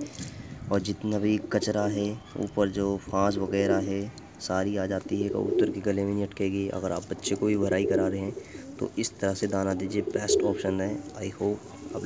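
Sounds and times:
pigeons cooing: 0.0s - 4.1s, 4.8s - 6.3s, 7.2s - 12.0s.

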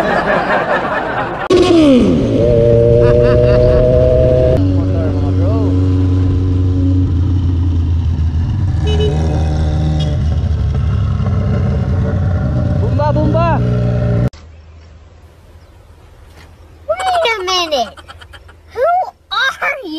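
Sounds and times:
motorcycle engine running: 1.5s - 14.3s.

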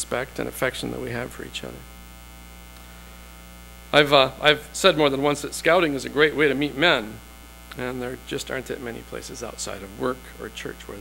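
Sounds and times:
man talking: 0.0s - 1.9s, 3.9s - 11.0s
electrical mains hum: 0.0s - 11.0s.

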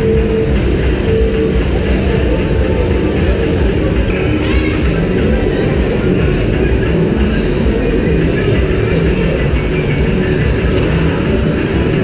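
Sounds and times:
low rumble of ice rink: 0.0s - 12.0s
music: 0.0s - 12.0s.

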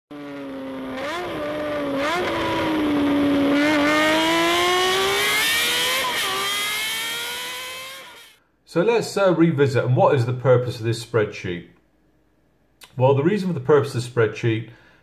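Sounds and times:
high-revving vehicle engine: 0.1s - 8.4s.

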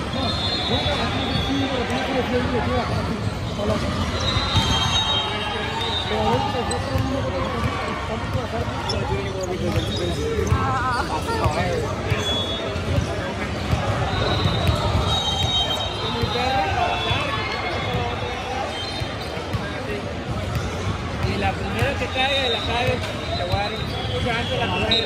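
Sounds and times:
chatter of many voices: 0.0s - 25.0s
volleyballs bouncing and struck: 6.1s - 18.2s, 19.0s - 22.1s.

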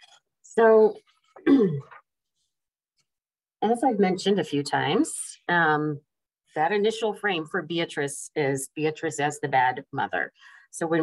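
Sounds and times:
woman clearing her throat: 1.4s - 2.0s.

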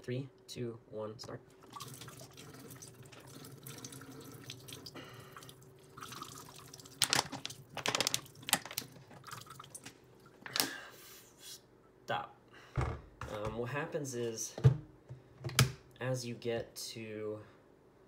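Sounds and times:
water stream into a metal sink: 1.6s - 9.9s
plastic bottle crackling: 6.9s - 9.9s.

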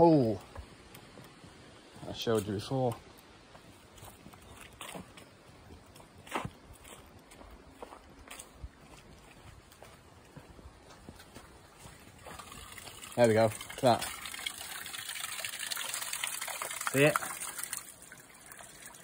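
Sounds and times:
footsteps on grass and dry leaves: 3.4s - 14.1s.

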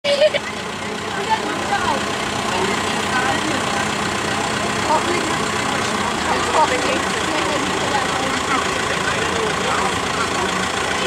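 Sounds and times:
crowd chatter: 0.0s - 11.0s
tractor diesel engine running: 0.0s - 11.0s.

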